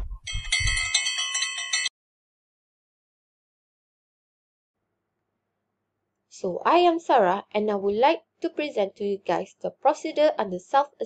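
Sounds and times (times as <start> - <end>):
small bell ringing: 0.3 - 1.9.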